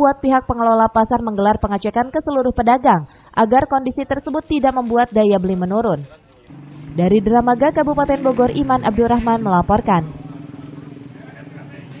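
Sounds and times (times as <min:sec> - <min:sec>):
vehicle engine humming: 0:03.6 - 0:12.0
passing traffic: 0:04.0 - 0:12.0.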